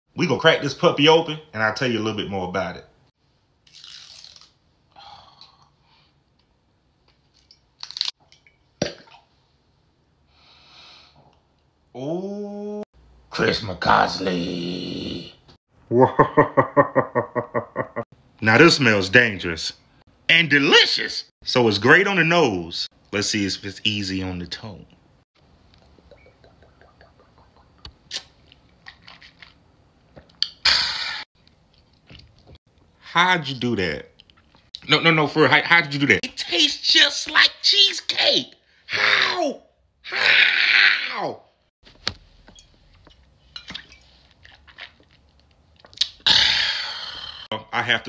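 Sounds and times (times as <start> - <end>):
cork pop: 8.8 - 9.2.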